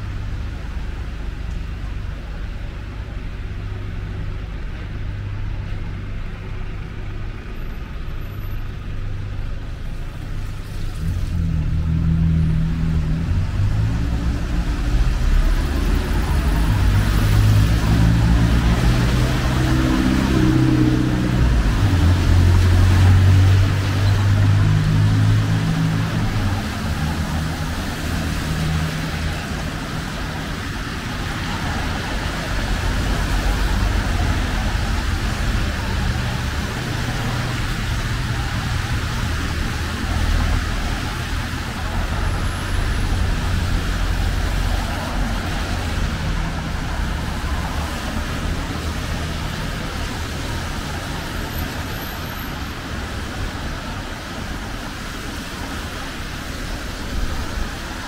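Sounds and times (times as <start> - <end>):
heavy vehicle engine rumble: 0.0 - 58.0
tyres hissing on wet road: 0.0 - 58.0.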